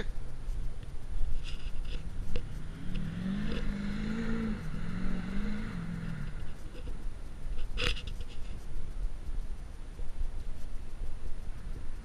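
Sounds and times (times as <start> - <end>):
pickup truck engine revving: 2.0 - 6.6.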